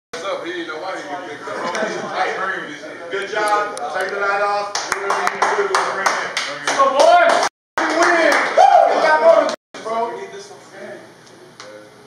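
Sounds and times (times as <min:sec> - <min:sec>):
group clapping in rhythm: 0:04.7 - 0:08.6
people shouting: 0:08.6 - 0:09.5.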